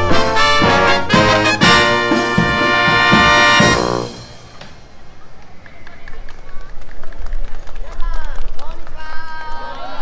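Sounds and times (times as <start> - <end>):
scattered clapping: 5.3 - 9.0.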